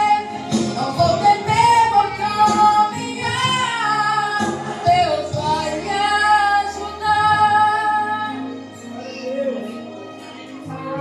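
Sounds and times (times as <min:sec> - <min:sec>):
woman singing through microphone: 0:00.0 - 0:08.8, 0:10.2 - 0:11.0.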